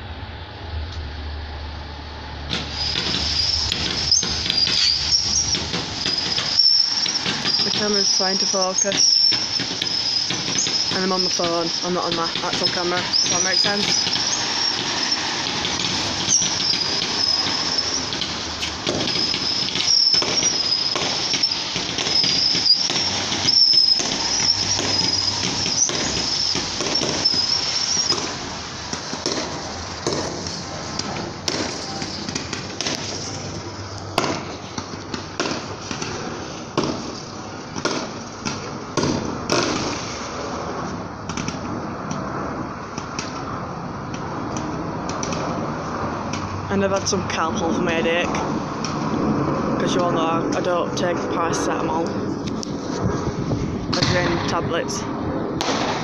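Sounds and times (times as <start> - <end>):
fireworks bangs and crackling: 2.3 - 56.0
high wavering whistle: 2.7 - 11.9, 19.1 - 28.2.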